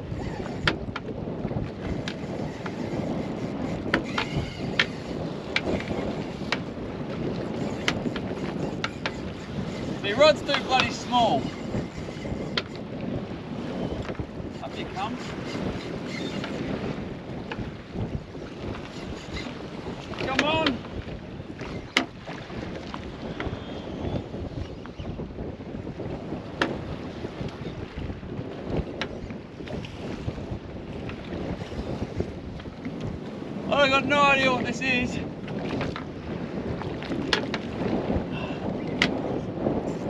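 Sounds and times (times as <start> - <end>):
waves slapping boat hull: 0.0 - 40.0
wind buffeting microphone: 0.0 - 40.0.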